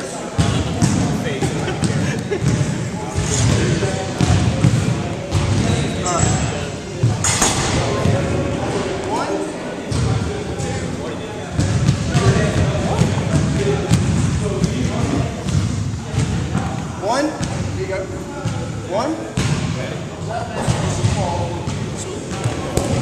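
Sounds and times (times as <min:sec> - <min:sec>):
group talking in echoing hall: 0:00.0 - 0:23.0.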